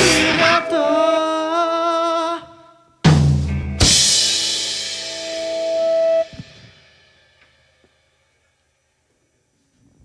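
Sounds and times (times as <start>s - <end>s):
rock band held note: 0.0s - 0.8s, 3.1s - 6.9s.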